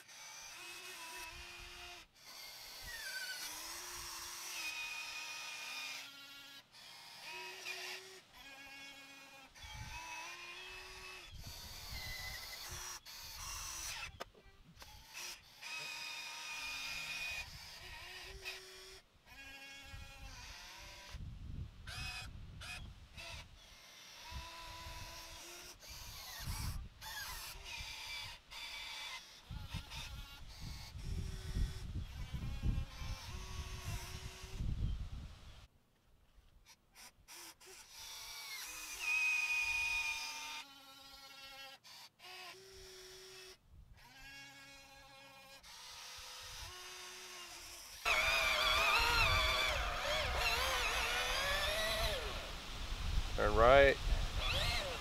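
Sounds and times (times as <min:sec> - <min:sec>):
small electric motors whining: 0:00.0 - 0:35.7, 0:36.6 - 0:55.0.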